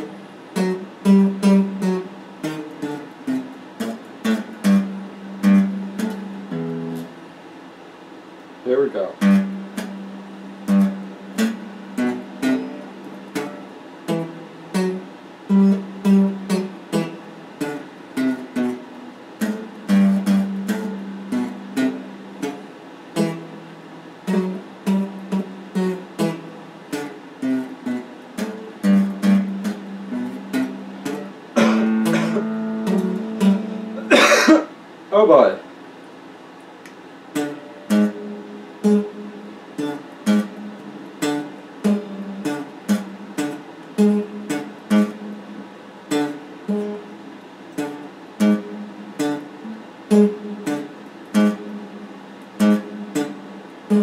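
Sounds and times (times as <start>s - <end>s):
clean electric guitar plucking: 0.0s - 7.2s, 9.2s - 22.6s, 23.2s - 34.5s, 37.4s - 54.0s
wavering pitch-bending guitar sound: 0.0s - 7.2s, 9.2s - 22.6s, 23.2s - 34.2s, 37.4s - 54.0s.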